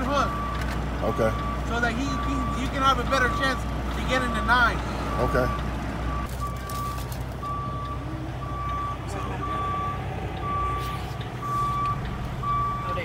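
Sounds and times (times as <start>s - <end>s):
diesel engine idling: 0.0s - 13.0s
truck backup alarm beeping: 0.0s - 13.0s.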